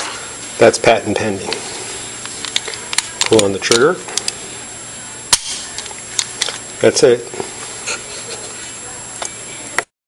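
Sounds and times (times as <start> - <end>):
pistol hammer dry fire click: 5.3 - 5.7.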